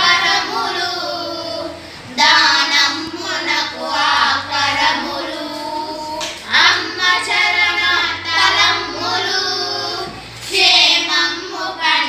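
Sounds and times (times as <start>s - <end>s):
young girls singing: 0.0s - 12.0s.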